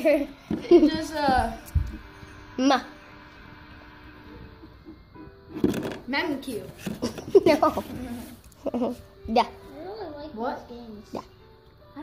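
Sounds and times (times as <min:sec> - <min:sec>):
faint steady tones: 0:00.0 - 0:12.0.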